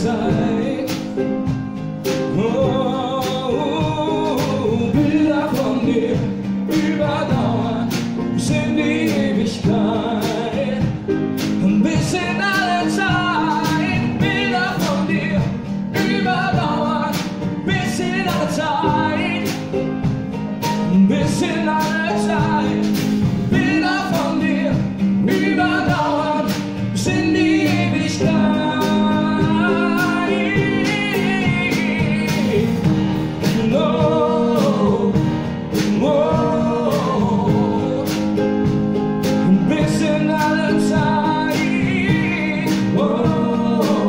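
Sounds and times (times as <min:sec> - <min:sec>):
acoustic guitar: 0:00.0 - 0:44.0
drum kit beat: 0:00.0 - 0:44.0
man singing: 0:00.0 - 0:44.0.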